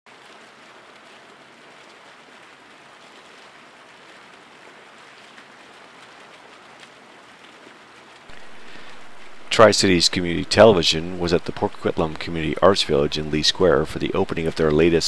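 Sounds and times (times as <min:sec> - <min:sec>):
fountain water splashing into pool: 0:00.1 - 0:15.0.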